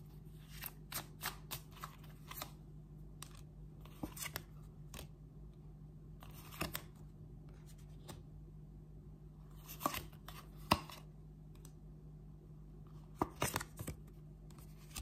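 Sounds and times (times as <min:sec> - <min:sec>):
cards being shuffled: 0:00.4 - 0:02.6, 0:03.2 - 0:05.1, 0:06.2 - 0:07.0, 0:09.6 - 0:11.0, 0:13.2 - 0:15.0.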